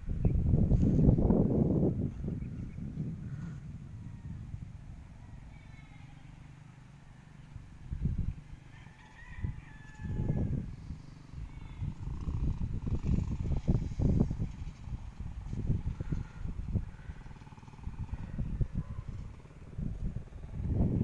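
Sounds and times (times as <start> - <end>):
wind rumble on microphone: 0.0 - 5.9, 7.5 - 21.0
rooster crowing: 8.6 - 10.8.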